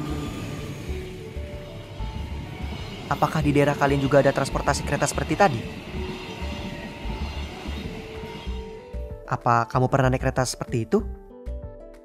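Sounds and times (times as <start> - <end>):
train rumbling on track: 0.0 - 9.3.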